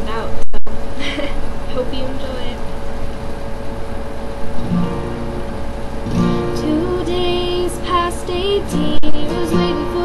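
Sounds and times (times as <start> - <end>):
acoustic guitar plucked notes: 4.6 - 10.0
young woman singing: 6.5 - 10.0.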